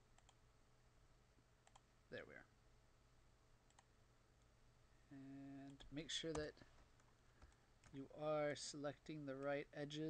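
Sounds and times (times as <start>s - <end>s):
computer mouse clicks: 0.1s - 0.4s, 1.6s - 1.9s, 3.7s - 3.9s.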